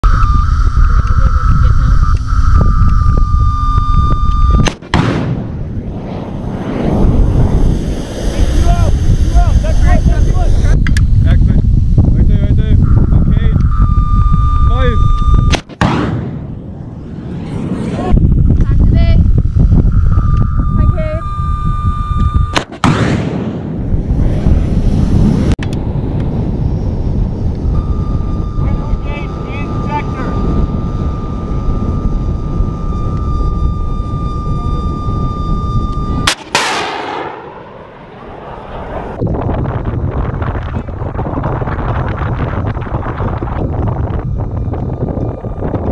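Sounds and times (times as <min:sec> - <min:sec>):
high seeker tone: 0:00.0 - 0:22.8, 0:25.7 - 0:40.8
wind rumble on microphone: 0:00.0 - 0:45.9
missile launch bang: 0:04.6 - 0:07.7, 0:15.7 - 0:16.8, 0:22.5 - 0:23.8, 0:36.2 - 0:37.7
missile rush: 0:04.6 - 0:11.4.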